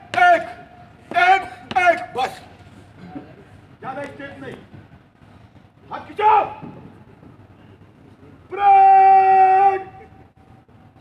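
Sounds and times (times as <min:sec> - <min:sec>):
man shouting commands: 0:00.0 - 0:02.5, 0:05.9 - 0:06.7, 0:08.4 - 0:10.2.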